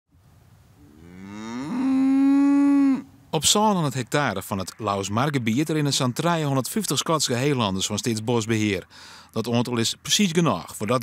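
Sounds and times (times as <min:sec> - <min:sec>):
cow mooing: 0:00.8 - 0:03.2.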